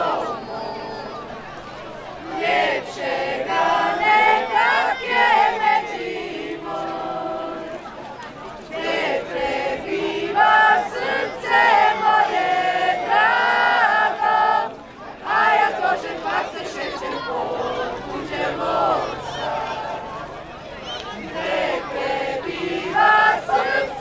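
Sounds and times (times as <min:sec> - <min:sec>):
group singing without instruments: 0:00.0 - 0:01.5, 0:02.2 - 0:07.9, 0:08.7 - 0:20.4, 0:21.0 - 0:24.0.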